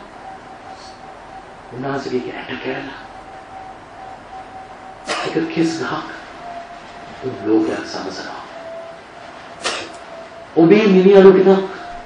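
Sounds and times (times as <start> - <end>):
faint recording hiss: 0.0 - 12.0
man preaching: 1.7 - 3.1, 5.2 - 6.3, 7.2 - 8.6, 10.6 - 12.0.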